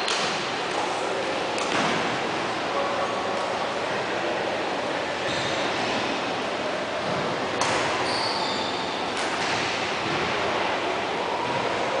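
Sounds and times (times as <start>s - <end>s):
rushing gym hall background noise: 0.0s - 12.0s.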